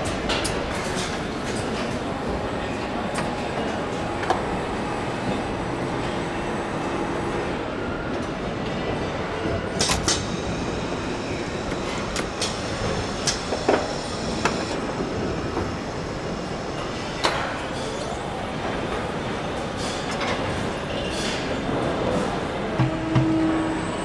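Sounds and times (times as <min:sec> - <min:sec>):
conveyor machinery rumble: 0:00.0 - 0:24.0.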